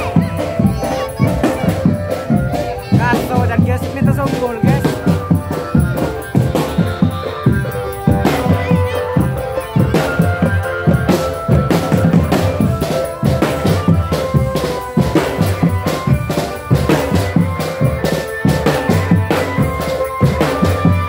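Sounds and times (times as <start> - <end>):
bass drums beating: 0.0 - 21.0
melody of held notes: 0.0 - 21.0
snare drums beating: 0.0 - 21.0.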